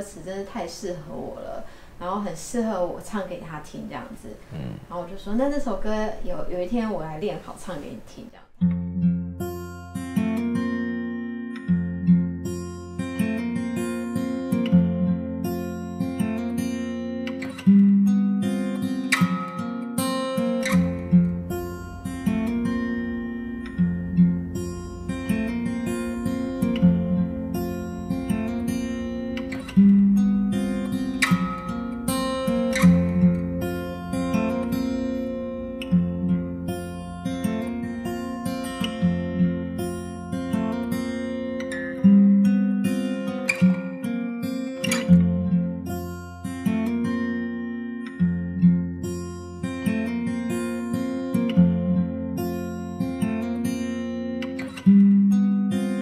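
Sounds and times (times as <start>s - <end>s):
acoustic guitar plucking: 0.2s - 56.0s.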